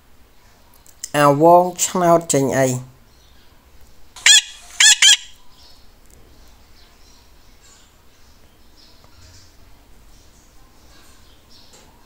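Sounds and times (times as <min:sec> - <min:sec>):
bird calling high-pitched: 0:04.2 - 0:05.4.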